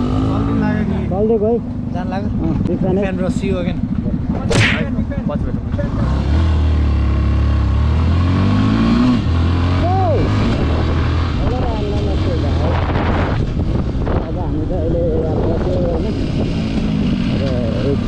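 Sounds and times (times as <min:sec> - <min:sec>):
motorcycle engine accelerating: 0:00.0 - 0:18.0
wind rushing over microphone: 0:08.4 - 0:18.0.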